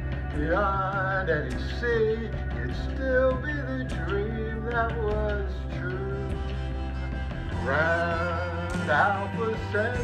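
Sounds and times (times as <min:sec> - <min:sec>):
man singing: 0:00.0 - 0:06.8, 0:07.4 - 0:10.0
pop backing track: 0:00.0 - 0:10.0.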